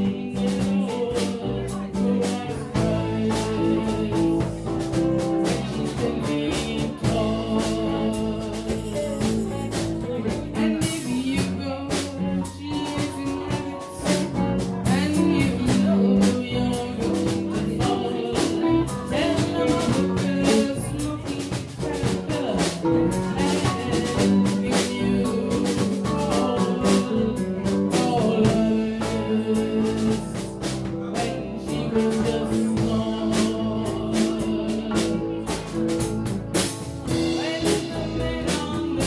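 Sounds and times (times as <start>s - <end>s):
drum kit beat: 0.0s - 39.0s
electric bass: 0.0s - 39.0s
woman singing: 0.0s - 39.0s.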